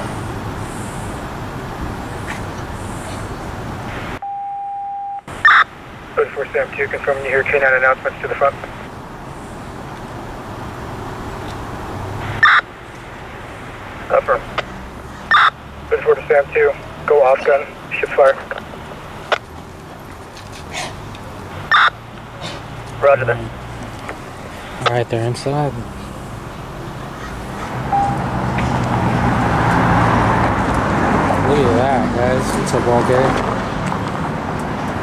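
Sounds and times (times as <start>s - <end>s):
electronic radio beep: 3.9s - 8.7s, 12.3s - 12.7s, 15.3s - 18.6s, 21.6s - 22.0s, 27.9s - 28.2s
loud radio chirp: 5.3s - 9.0s, 12.2s - 18.8s, 21.3s - 23.6s.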